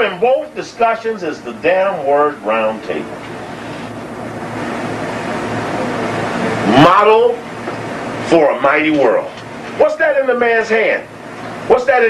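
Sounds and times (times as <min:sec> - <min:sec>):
man speaking: 0:06.7 - 0:07.4.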